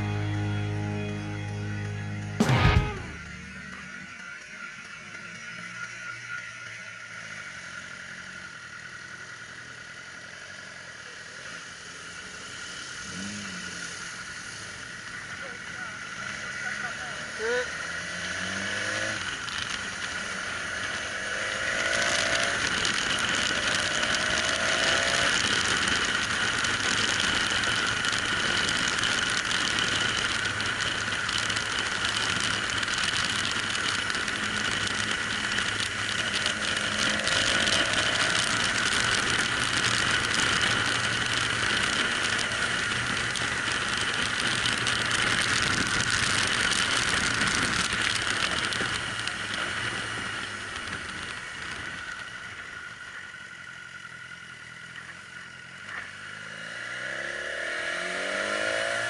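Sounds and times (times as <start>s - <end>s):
motorcycle engine: 0.0s - 59.0s.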